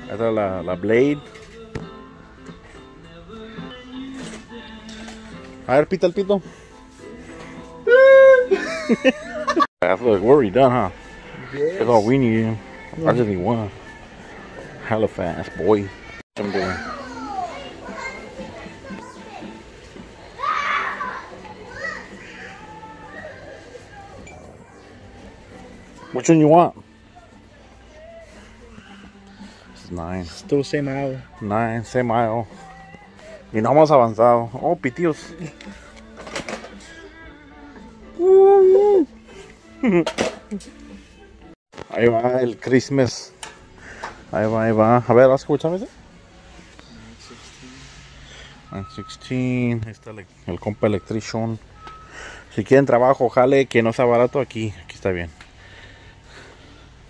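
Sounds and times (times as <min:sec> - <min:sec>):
faint background music: 0:00.0 - 0:57.0.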